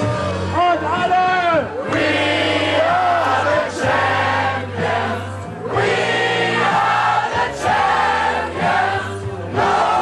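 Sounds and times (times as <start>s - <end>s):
group of people singing: 1.8s - 10.0s.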